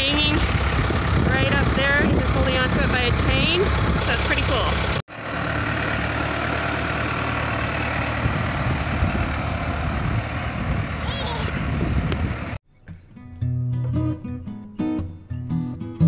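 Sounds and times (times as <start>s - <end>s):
tractor diesel engine running: 0.0s - 12.6s.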